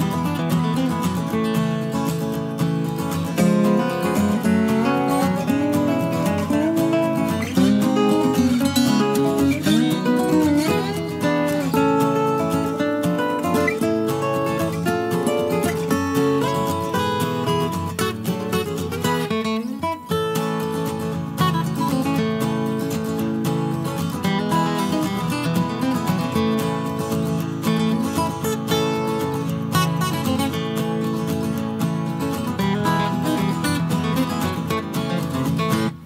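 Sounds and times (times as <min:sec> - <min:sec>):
acoustic guitar strumming: 0:00.0 - 0:36.0.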